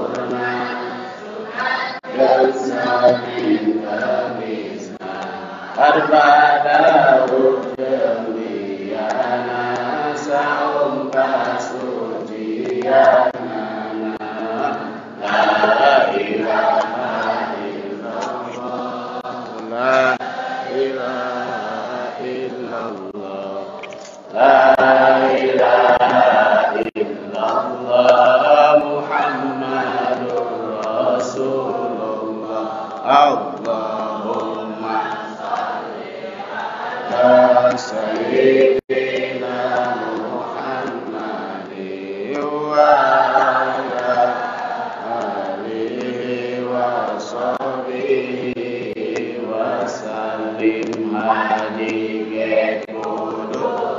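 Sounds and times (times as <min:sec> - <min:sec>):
group chanting: 0:00.0 - 0:53.9.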